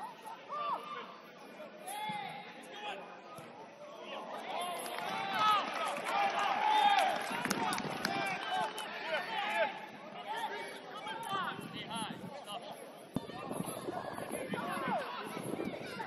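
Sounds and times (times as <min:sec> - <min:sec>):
voices calling and shouting: 0:00.0 - 0:16.0.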